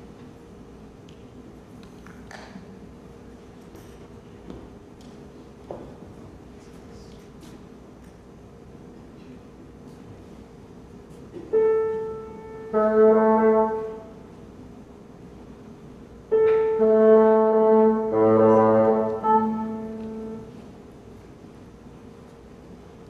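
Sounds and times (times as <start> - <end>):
bassoon held notes: 11.5 - 14.3, 16.3 - 20.7
piano tuning note: 11.5 - 14.3, 16.3 - 20.7.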